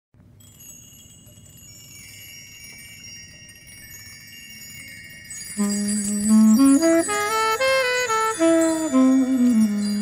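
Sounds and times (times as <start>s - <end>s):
chimes ringing: 0.4s - 10.0s
high sustained notes: 5.6s - 10.0s.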